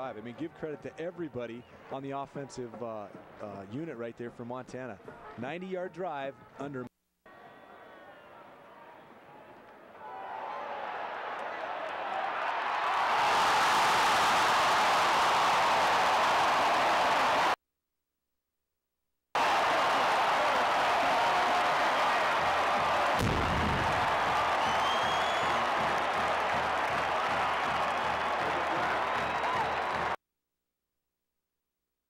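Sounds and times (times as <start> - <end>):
stadium crowd cheering: 7.3 - 17.6, 19.4 - 30.2.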